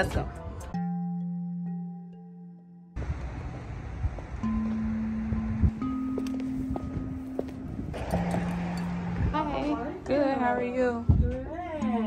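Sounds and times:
long low held notes: 2.6 - 12.0
wind rumbling on microphone: 3.0 - 5.8, 6.7 - 11.8
street noise: 3.0 - 12.0.

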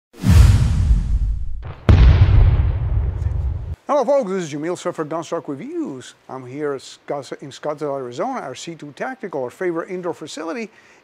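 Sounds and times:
sharp boom with low tail: 0.2 - 3.8
whoosh: 0.2 - 3.8.

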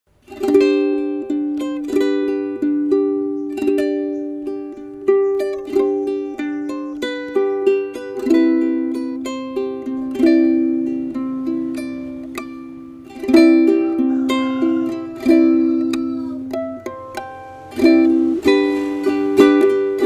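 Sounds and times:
ukulele chords ringing: 0.1 - 20.0.

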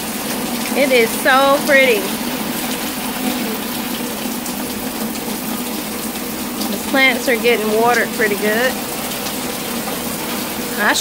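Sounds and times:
rain falling: 0.0 - 11.0
woman speaking: 0.7 - 2.2, 6.7 - 8.8, 10.7 - 11.0.

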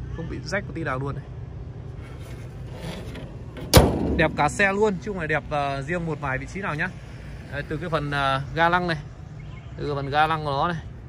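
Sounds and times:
handling of car bonnet: 2.0 - 4.8
car bonnet slamming shut: 3.6 - 5.0.

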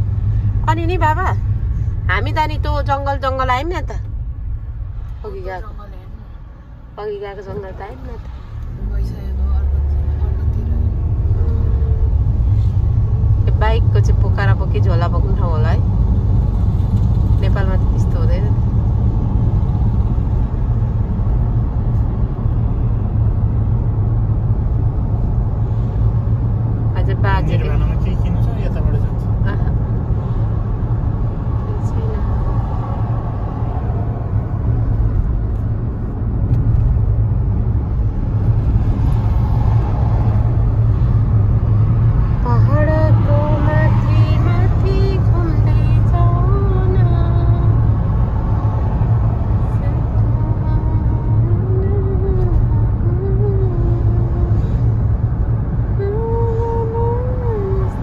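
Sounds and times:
car cabin road rumble: 0.0 - 58.0
people talking: 0.7 - 1.4, 7.0 - 8.2, 13.4 - 15.8, 17.4 - 18.5, 27.0 - 29.7.

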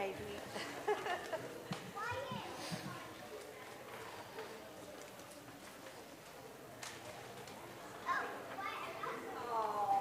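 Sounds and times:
children's voices and chatter: 0.6 - 10.0.

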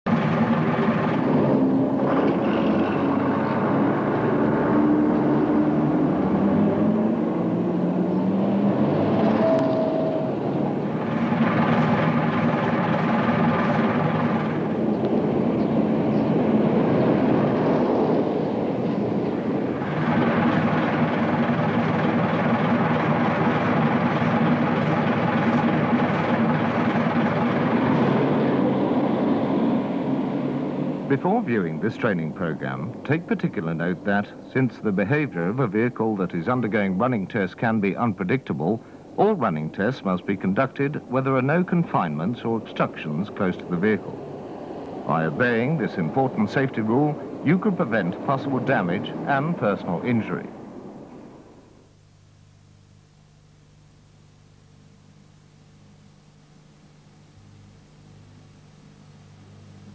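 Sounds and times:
diesel bus engine running: 0.0 - 51.6.

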